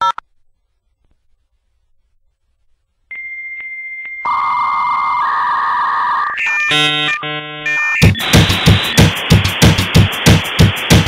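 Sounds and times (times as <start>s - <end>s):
high synthesizer tone: 4.3s - 9.2s
drumbeat: 8.0s - 11.0s.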